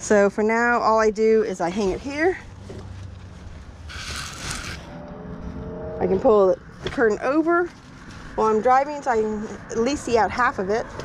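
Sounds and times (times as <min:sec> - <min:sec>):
curtain fabric rustling: 0:02.9 - 0:04.9.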